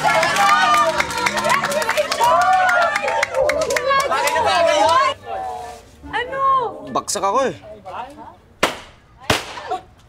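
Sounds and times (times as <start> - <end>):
party popper pops: 8.6 - 9.6.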